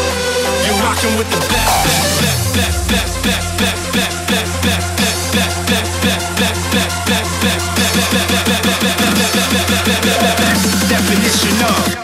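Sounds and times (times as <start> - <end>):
hardcore electronic dance music: 0.0 - 12.0.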